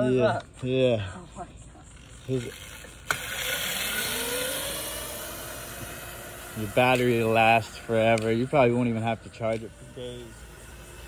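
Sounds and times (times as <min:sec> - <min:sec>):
electric motor whining: 0:01.9 - 0:11.0.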